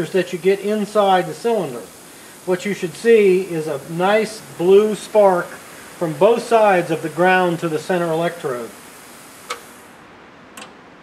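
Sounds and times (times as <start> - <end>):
spark plug tester clicks: 9.4 - 9.8.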